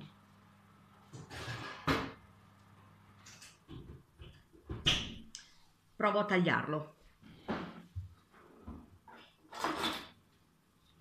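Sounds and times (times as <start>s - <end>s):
objects knocking and clicking: 3.2s - 5.3s.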